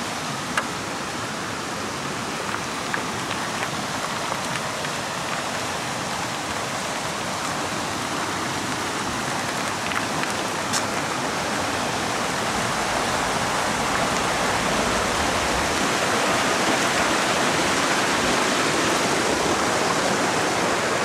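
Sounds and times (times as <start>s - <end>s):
small stream rushing: 0.0s - 21.0s.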